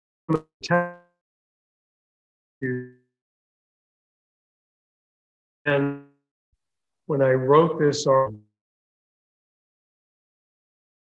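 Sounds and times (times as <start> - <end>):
man's voice over video call: 0.3 - 1.1, 2.6 - 3.0, 5.7 - 6.2, 7.1 - 8.6.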